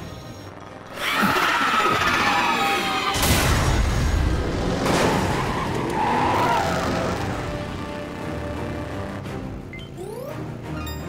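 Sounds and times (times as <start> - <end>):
heavy cartoon crash: 3.1 - 5.4.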